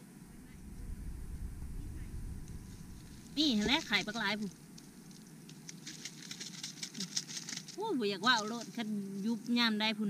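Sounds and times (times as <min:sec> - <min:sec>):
leaves crackling in mesh basket: 0:02.4 - 0:09.8.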